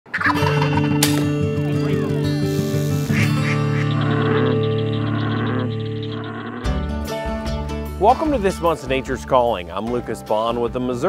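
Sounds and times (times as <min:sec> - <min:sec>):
turkeys gobbling: 0:00.1 - 0:00.9, 0:03.1 - 0:06.7
music with held low notes: 0:00.2 - 0:11.0
sharp click: 0:01.0 - 0:01.3.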